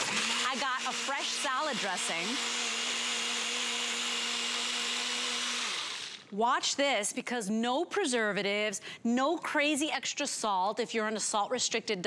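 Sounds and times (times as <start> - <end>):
blender running: 0.0 - 6.3.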